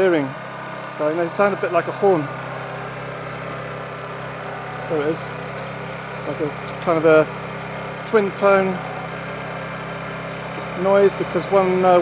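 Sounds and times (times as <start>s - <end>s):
electric motors twin-tone hum: 0.0s - 12.0s.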